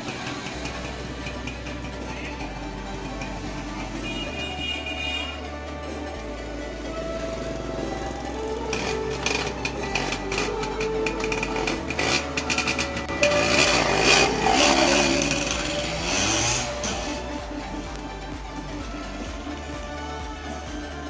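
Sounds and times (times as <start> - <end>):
two-stroke motorcycle engine revving: 0.0 - 5.5, 6.8 - 17.9
background music: 0.0 - 21.0.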